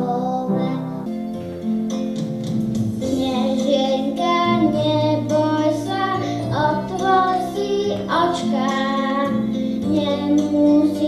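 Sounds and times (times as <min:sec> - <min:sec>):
boy singing into a microphone: 0:00.0 - 0:01.1, 0:03.0 - 0:11.0
instrumental accompaniment: 0:00.0 - 0:11.0.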